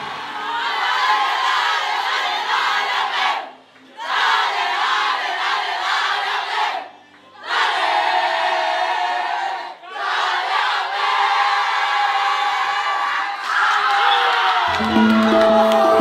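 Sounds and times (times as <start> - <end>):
women chanting together: 0.0 - 12.1.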